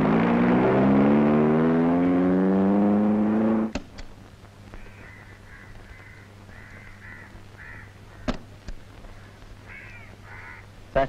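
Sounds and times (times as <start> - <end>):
car engine accelerating: 0.0 - 3.8.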